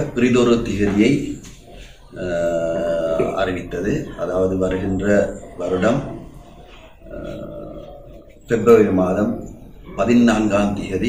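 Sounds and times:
room noise: 0.0 - 11.0
faint low voice: 4.9 - 10.0.

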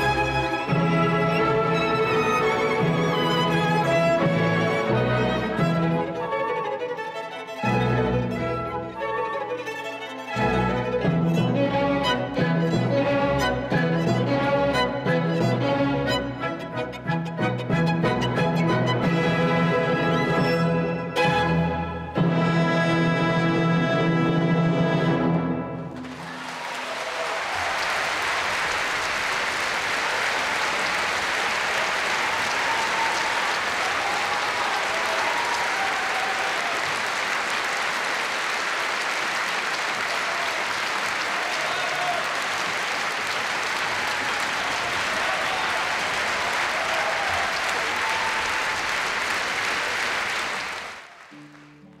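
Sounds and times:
audience applauding: 0.0 - 11.6, 25.8 - 52.0.

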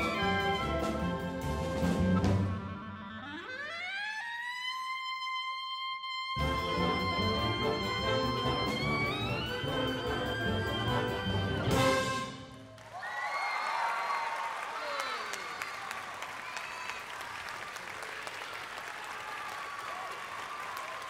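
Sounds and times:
wind band playing: 0.0 - 4.0, 6.4 - 12.7
clarinet glissando: 0.0 - 12.3.

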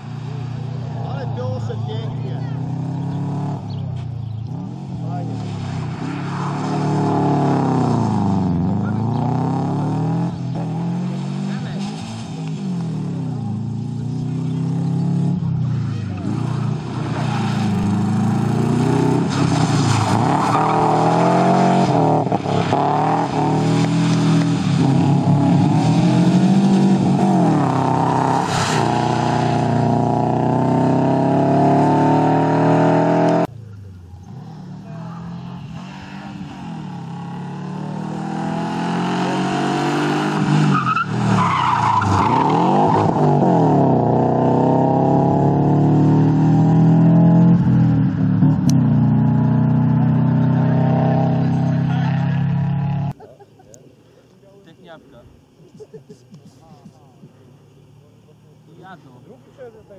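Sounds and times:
rally car engine revving: 0.0 - 33.5, 34.1 - 53.2.

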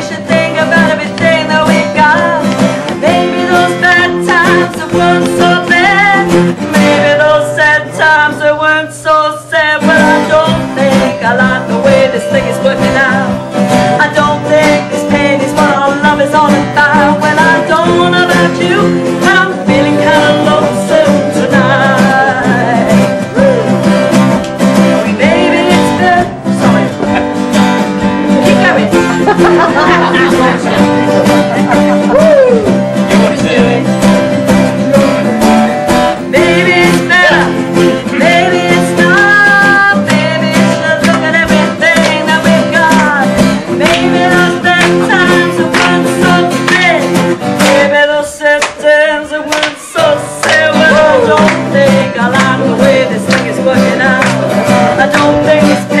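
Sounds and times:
woman singing: 0.0 - 23.7, 25.0 - 27.2, 28.2 - 33.9, 36.2 - 56.0
acoustic guitars strumming: 0.0 - 56.0.

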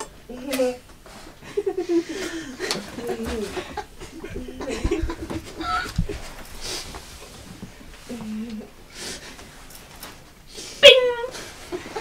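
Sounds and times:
person laughing: 1.4 - 6.4.

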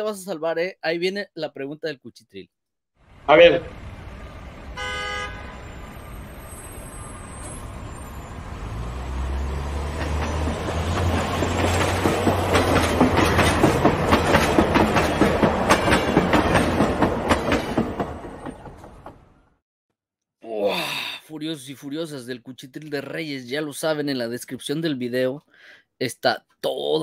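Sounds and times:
train horn toot: 4.8 - 6.3
train wheels clattering on rails: 9.7 - 19.3.

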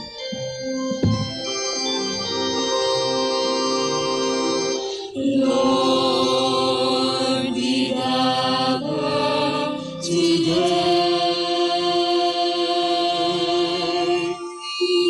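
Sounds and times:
organ chords: 0.0 - 11.2
hymn singing: 0.0 - 15.0.

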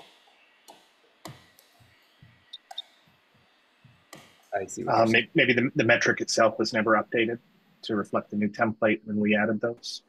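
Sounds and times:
faint clicks and taps: 0.0 - 4.6.

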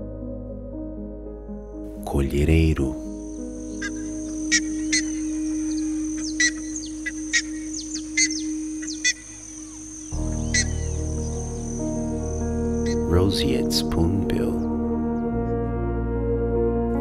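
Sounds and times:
soft background music: 0.0 - 17.0
high bird chirps: 3.1 - 13.1.

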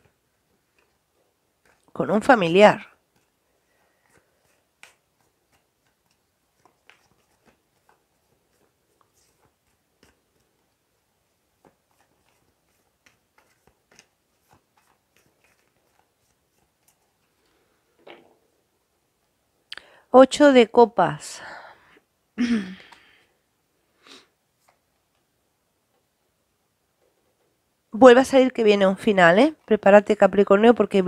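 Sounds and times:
cards being shuffled: 1.6 - 1.9, 3.0 - 17.5.

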